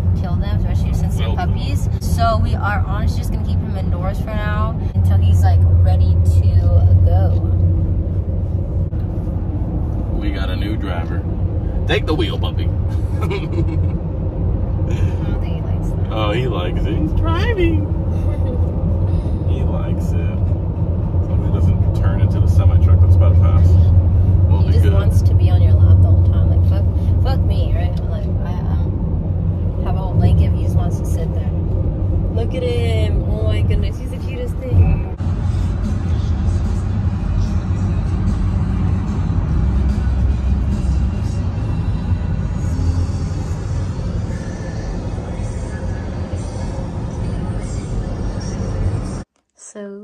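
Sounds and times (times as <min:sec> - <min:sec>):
voices: 0:00.0 - 0:07.6, 0:14.9 - 0:20.4, 0:24.5 - 0:28.9, 0:29.8 - 0:31.6, 0:32.3 - 0:35.2
van engine drone: 0:00.0 - 0:49.9
road noise: 0:00.0 - 0:50.0
music: 0:35.3 - 0:46.6.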